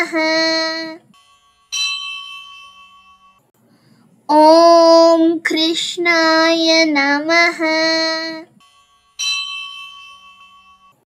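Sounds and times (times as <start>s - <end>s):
bell ringing: 1.1s - 3.4s, 8.6s - 11.0s.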